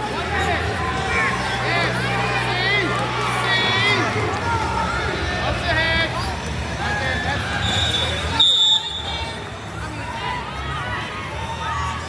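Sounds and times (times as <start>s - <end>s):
people talking and calling out: 0.0s - 12.0s
referee's whistle blast: 7.6s - 9.2s.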